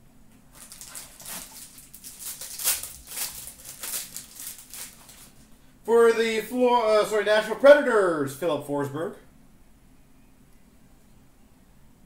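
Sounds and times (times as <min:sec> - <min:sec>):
cardboard and cards rustling: 0:00.5 - 0:05.5.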